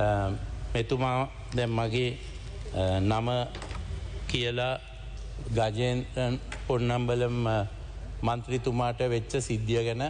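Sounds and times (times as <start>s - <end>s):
man speaking into microphone: 0.0s - 10.0s.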